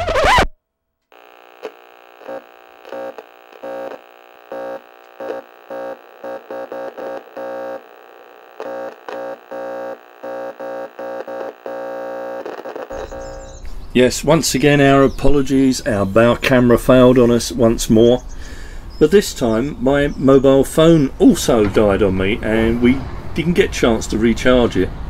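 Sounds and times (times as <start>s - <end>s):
held synthesized chord: 1.2s - 13.7s.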